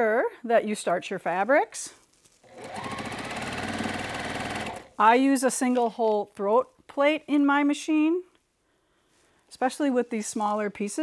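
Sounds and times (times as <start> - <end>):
sewing machine stitching: 2.4 - 5.0.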